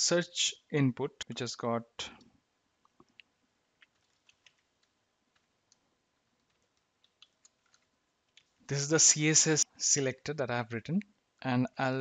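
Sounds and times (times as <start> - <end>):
computer keyboard keystrokes: 3.8 - 5.8, 6.4 - 8.5.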